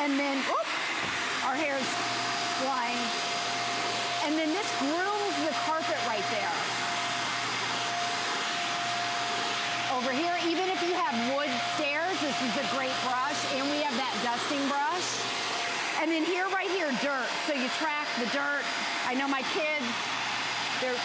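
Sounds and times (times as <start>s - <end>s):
vacuum cleaner motor whine: 0.0s - 21.0s.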